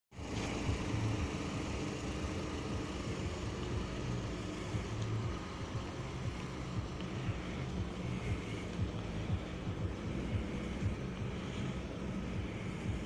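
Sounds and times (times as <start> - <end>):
car engine idling: 0.1 - 13.0.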